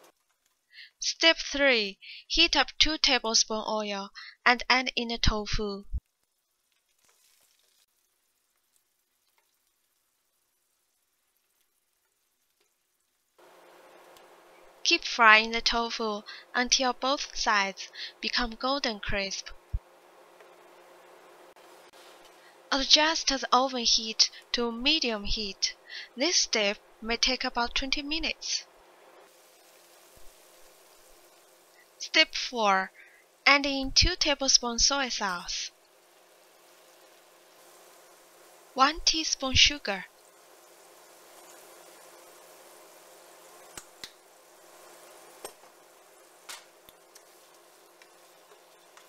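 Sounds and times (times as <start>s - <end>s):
faint steady hum: 0.0s - 49.0s
tofu sizzling in oil: 6.0s - 14.8s, 28.6s - 32.1s, 32.9s - 49.0s.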